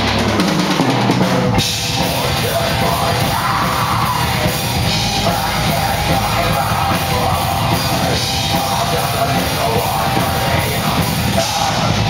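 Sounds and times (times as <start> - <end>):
heavy rock band playing: 0.0 - 12.0.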